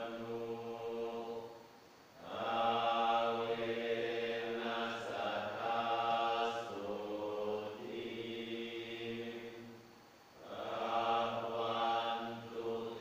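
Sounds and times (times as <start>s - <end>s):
monks chanting in unison: 0.0s - 9.8s, 10.4s - 13.0s.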